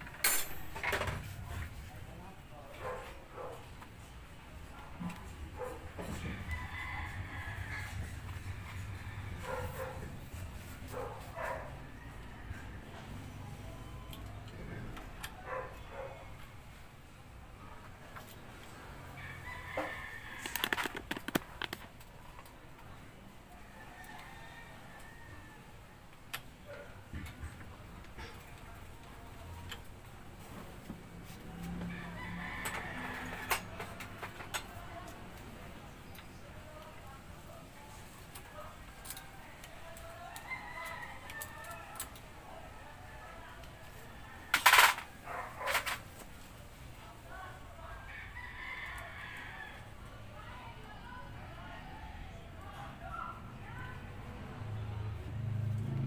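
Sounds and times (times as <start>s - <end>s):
rooster crowing: 6.1s - 10.0s, 19.1s - 21.7s, 23.6s - 25.8s, 31.8s - 33.8s, 39.1s - 42.2s, 48.0s - 50.1s
scattered clicks: 20.4s - 21.9s.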